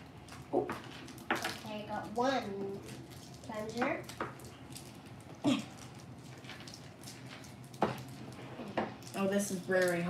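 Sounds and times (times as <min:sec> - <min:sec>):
plastic wrappers crinkling: 0:00.2 - 0:10.0.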